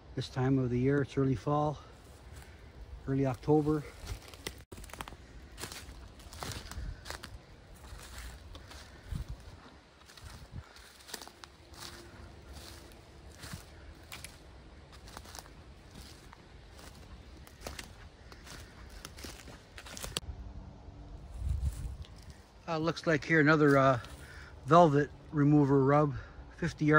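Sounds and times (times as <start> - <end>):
footsteps on dry leaves: 1.4 - 20.3, 21.2 - 25.8.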